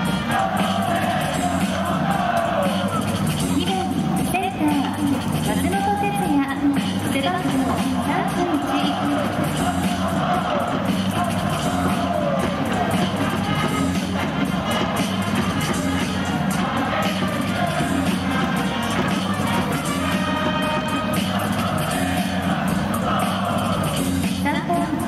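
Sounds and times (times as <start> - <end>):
crowd noise: 0.0 - 25.0
music over loudspeakers: 0.0 - 25.0.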